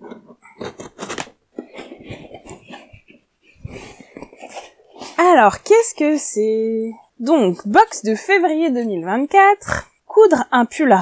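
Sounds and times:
cardboard flaps scraping and crackling: 0.0s - 5.3s.

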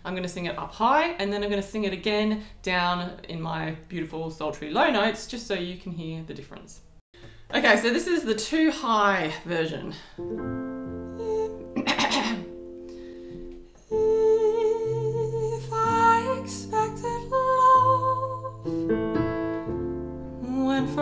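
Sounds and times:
digital piano chords: 10.2s - 21.0s
woman singing jazz ballad: 11.0s - 12.5s, 13.8s - 18.8s, 20.4s - 21.0s.

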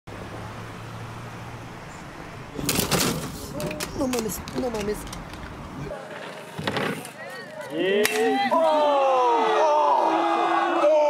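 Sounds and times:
vehicle engine humming: 0.1s - 5.9s
person speaking: 3.4s - 5.2s.

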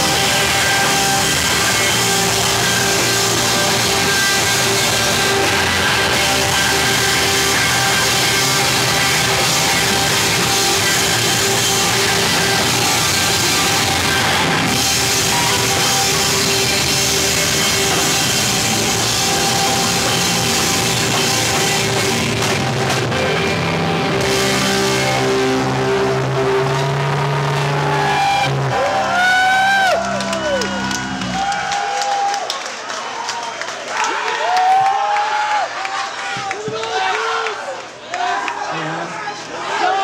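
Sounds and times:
distorted guitars: 0.0s - 31.8s
screamo band playing live: 0.0s - 32.2s
crowd shouting: 0.0s - 32.5s, 33.9s - 40.0s
drums: 0.0s - 32.9s, 36.2s - 37.1s.

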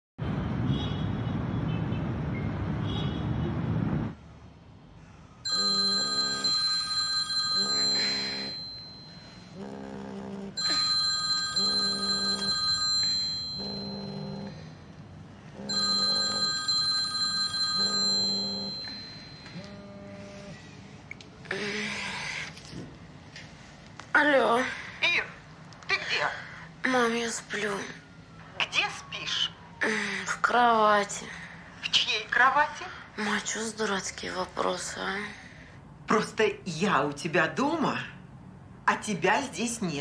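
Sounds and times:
high electronic ringtone: 5.5s - 9.6s, 10.6s - 14.7s, 15.6s - 20.6s
phone vibrating against wood: 9.7s - 14.6s, 15.6s - 20.5s.

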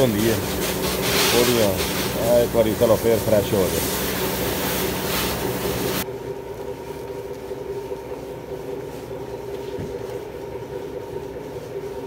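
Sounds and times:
pressure washer spraying water: 0.0s - 6.0s
steady machine hum: 0.0s - 12.0s.

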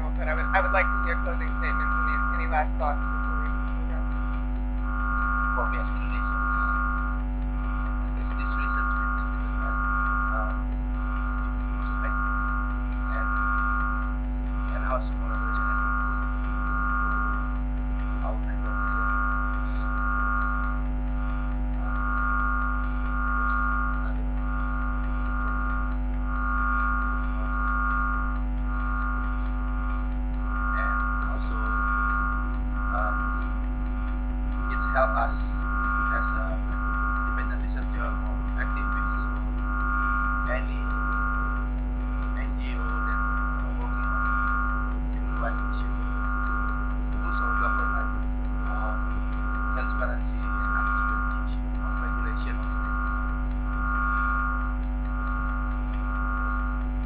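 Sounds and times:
electrical hum and drone: 0.0s - 57.0s
pulsing high tone: 0.0s - 57.0s.

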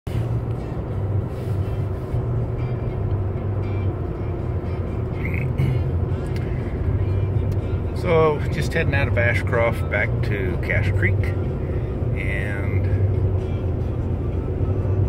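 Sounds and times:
vehicle engine and tyre rumble: 0.1s - 15.0s.

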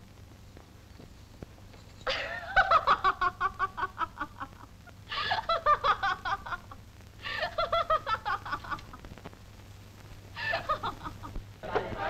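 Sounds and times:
woman laughing: 2.1s - 9.0s, 10.4s - 11.9s.

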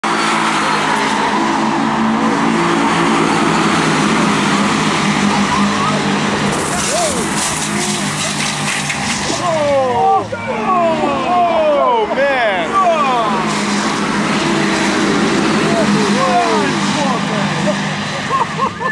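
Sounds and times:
race cars passing at speed: 0.0s - 18.9s
tyres skidding: 0.0s - 18.9s.

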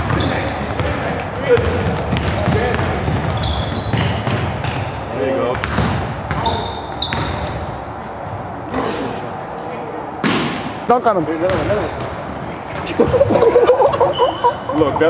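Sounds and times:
basketball bouncing on hardwood: 0.0s - 4.8s, 5.6s - 7.4s
sneaker squeaks: 0.0s - 9.2s, 11.1s - 15.0s.

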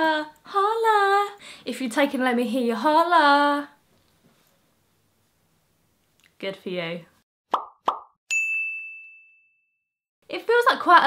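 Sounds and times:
high bell-like ding: 8.3s - 9.8s.

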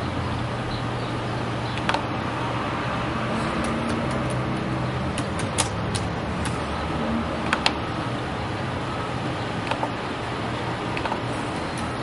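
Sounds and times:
steady background hum: 0.0s - 12.0s
keyboard keys clicking: 3.5s - 6.6s.

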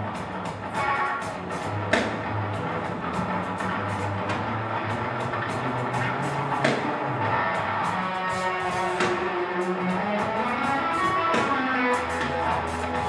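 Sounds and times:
drum kit with cymbals: 0.0s - 13.0s
electric guitar chords: 0.0s - 13.0s.

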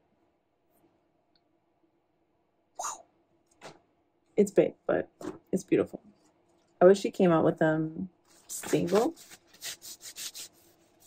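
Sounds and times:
brisk rubbing against skin: 8.3s - 11.0s.

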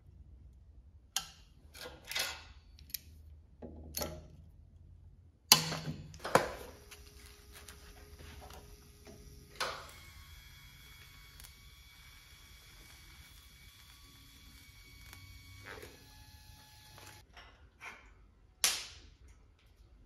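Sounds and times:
welding arc hum: 5.5s - 17.2s
welder click: 8.4s - 17.2s.

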